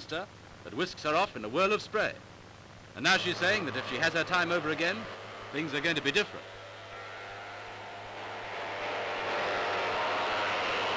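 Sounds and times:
constant low hum: 0.0s - 10.9s
speedboat engine and spray rushing: 3.2s - 10.9s.

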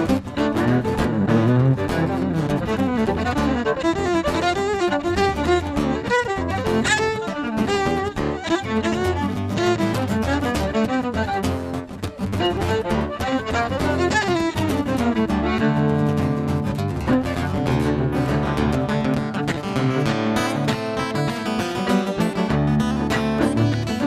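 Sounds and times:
acoustic guitar: 0.0s - 24.0s
fiddle playing melody: 0.0s - 24.0s.

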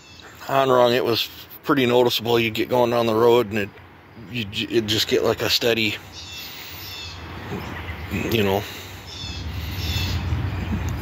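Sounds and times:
birds calling: 0.0s - 11.0s.

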